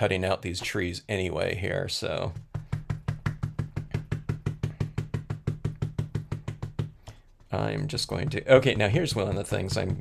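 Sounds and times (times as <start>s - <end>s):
rapid dauber taps on table: 2.3s - 10.0s.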